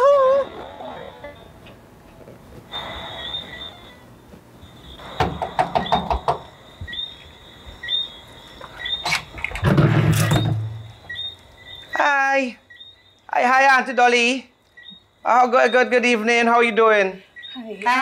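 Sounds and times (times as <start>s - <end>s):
faint high chirps: 2.7s - 9.4s, 10.2s - 18.0s
knocking on door: 5.2s - 7.0s.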